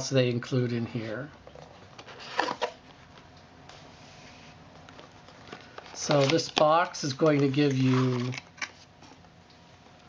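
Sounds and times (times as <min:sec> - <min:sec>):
cardboard rustling: 0:04.2 - 0:08.9.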